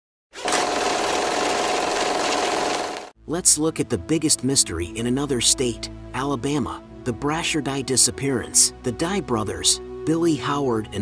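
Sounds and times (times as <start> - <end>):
rapid mechanical clatter: 0.4 - 3.1.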